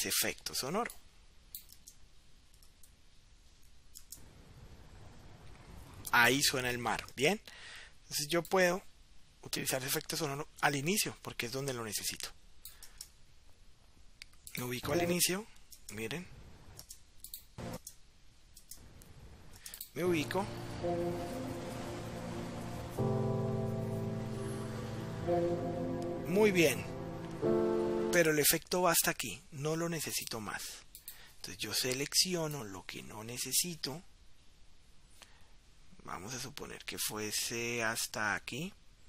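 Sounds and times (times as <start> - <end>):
quiet room hum: 0.0 - 39.0
faint computer mouse clicks: 12.6 - 13.2
surf hiss: 20.0 - 28.5.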